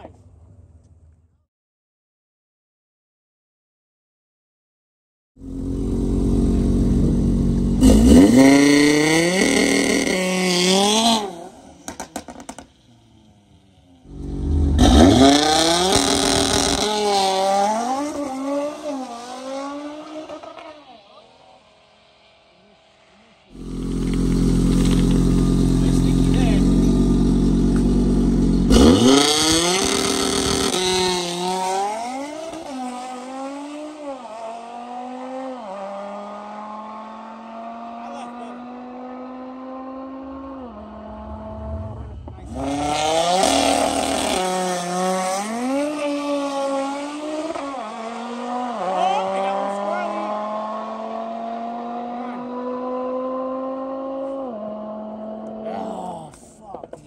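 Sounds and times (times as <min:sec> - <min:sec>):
car engine revving and launching: 0:05.4 - 0:22.6, 0:23.5 - 0:55.6.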